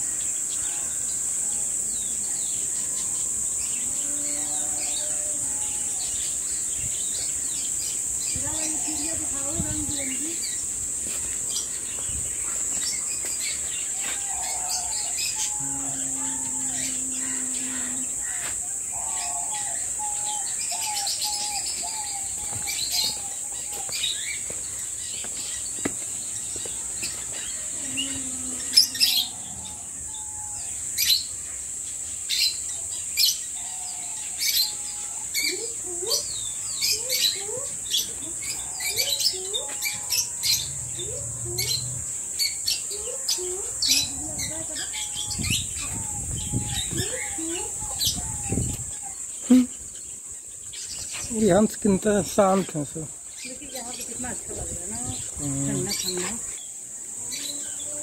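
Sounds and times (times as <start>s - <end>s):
small birds chirping: 0.0s - 58.0s
steady high-pitched hiss: 0.0s - 58.0s.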